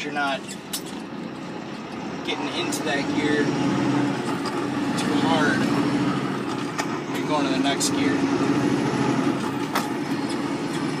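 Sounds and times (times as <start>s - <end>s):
diesel truck engine drone: 0.0s - 11.0s.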